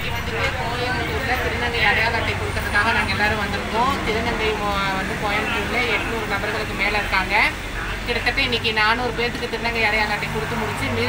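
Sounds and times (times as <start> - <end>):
low engine-like hum: 0.0 - 11.0
road traffic rumble: 0.0 - 11.0
woman talking: 0.0 - 11.0.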